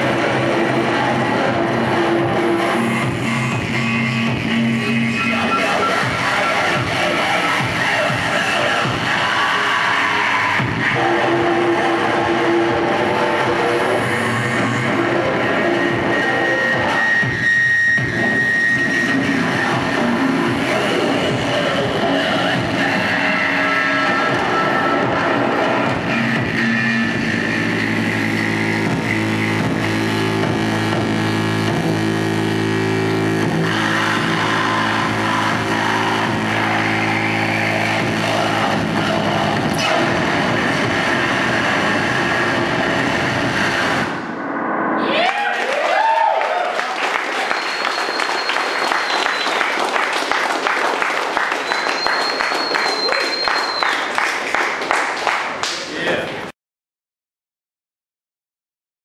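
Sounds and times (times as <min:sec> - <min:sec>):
steady low drone: 0:00.0 - 0:10.0, 0:10.6 - 0:45.0
distorted harsh noise music: 0:00.0 - 0:56.5.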